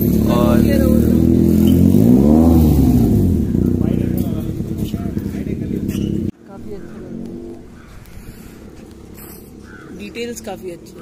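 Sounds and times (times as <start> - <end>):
vehicle engine revving: 0.0 - 11.0.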